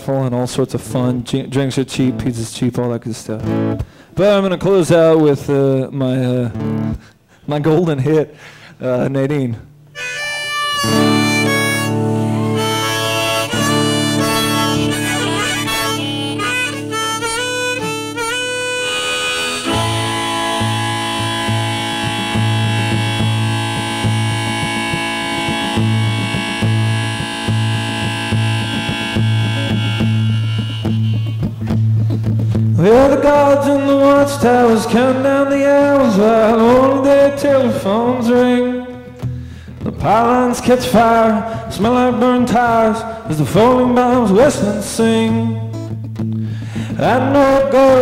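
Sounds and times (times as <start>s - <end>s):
acoustic guitar strumming: 3.4s - 4.0s, 6.5s - 7.1s, 9.7s - 48.0s
harmonica melody: 9.9s - 46.0s.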